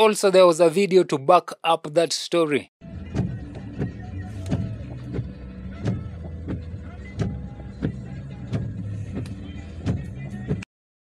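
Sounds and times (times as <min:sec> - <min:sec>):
vehicle engine running: 0:03.0 - 0:10.4.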